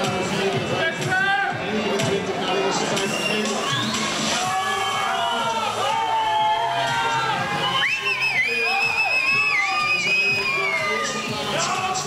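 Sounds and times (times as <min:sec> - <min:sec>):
spectators cheering indoors: 0:03.0 - 0:12.0.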